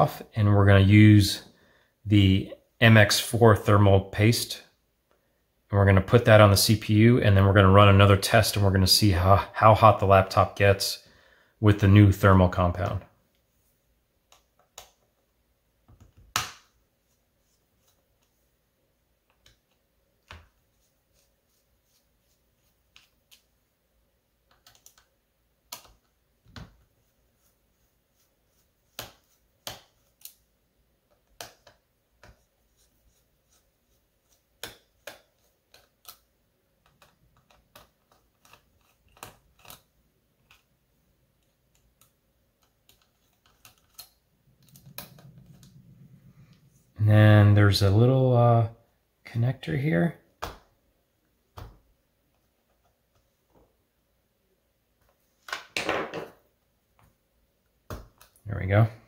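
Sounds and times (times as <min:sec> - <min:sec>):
fingers clicking on laptop parts: 0:14.2 - 0:15.2, 0:24.4 - 0:26.9, 0:28.9 - 0:30.4, 0:31.1 - 0:40.7, 0:41.4 - 0:45.8.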